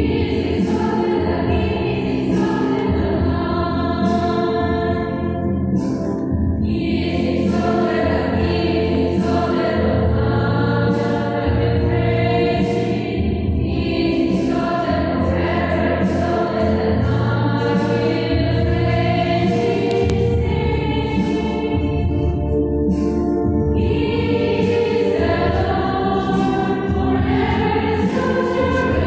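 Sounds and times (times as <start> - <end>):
group singing a hymn: 0.0 - 5.6, 6.6 - 23.1, 23.7 - 29.0
low sustained accompaniment: 0.0 - 29.0.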